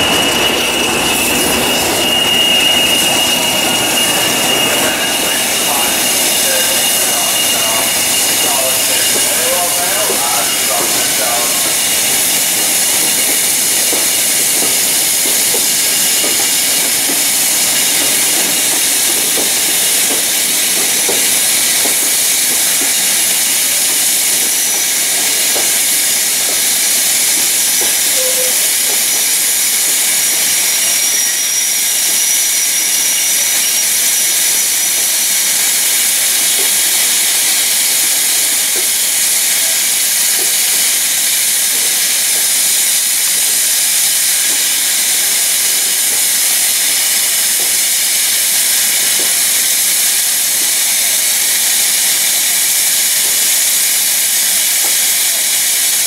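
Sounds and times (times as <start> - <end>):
steam engine hissing steam: 0.0 - 56.0.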